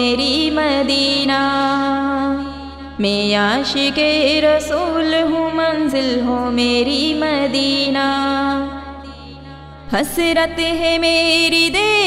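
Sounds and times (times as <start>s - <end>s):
woman singing: 0.0s - 12.0s.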